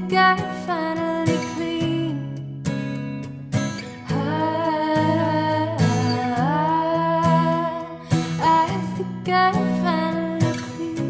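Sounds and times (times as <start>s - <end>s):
woman singing: 0.0s - 2.5s, 4.0s - 11.0s
strummed acoustic guitar: 0.0s - 11.0s.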